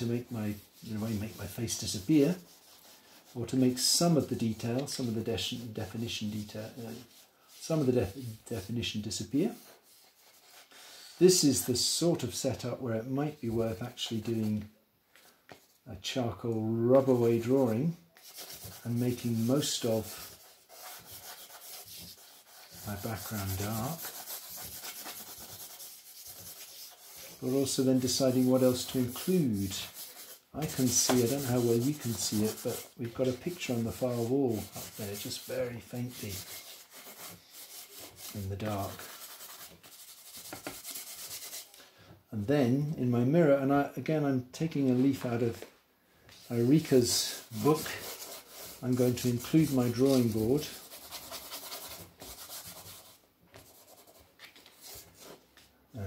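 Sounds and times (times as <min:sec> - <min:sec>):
charcoal rubbing on paper: 0:00.0 - 0:12.0, 0:16.9 - 0:41.8, 0:46.3 - 0:55.4.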